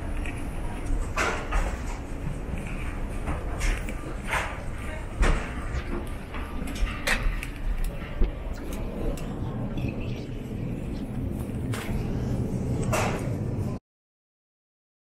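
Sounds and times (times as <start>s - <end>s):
steady low rumble: 0.0s - 13.8s
background voices: 2.2s - 13.8s.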